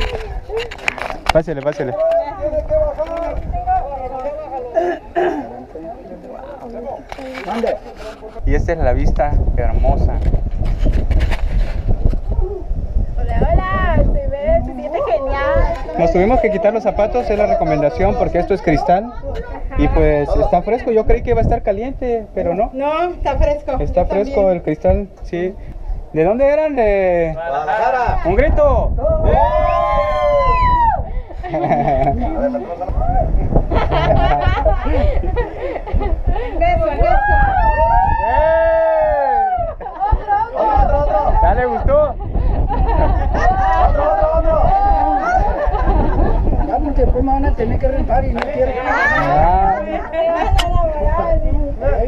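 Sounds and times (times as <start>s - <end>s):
voices talking over one another: 0.0s - 10.4s, 12.2s - 25.0s, 25.6s - 52.0s
wind buffeting microphone: 0.0s - 52.0s
group of people yelling: 29.0s - 31.1s, 36.9s - 39.8s, 43.4s - 45.7s
people talking: 42.8s - 52.0s.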